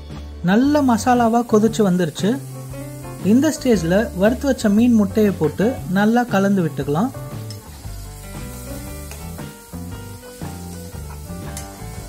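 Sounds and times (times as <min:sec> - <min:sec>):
food sizzling in a pan: 0:00.0 - 0:12.0.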